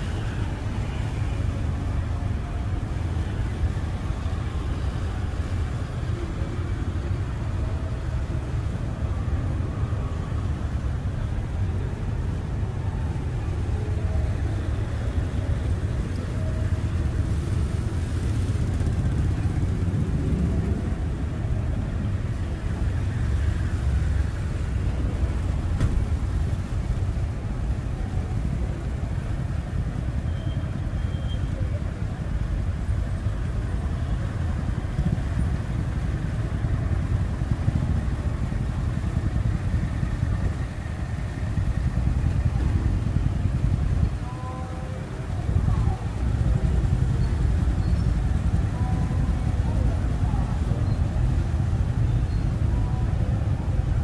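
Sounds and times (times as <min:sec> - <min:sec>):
motorbikes and cars passing: 0:00.0 - 0:54.0.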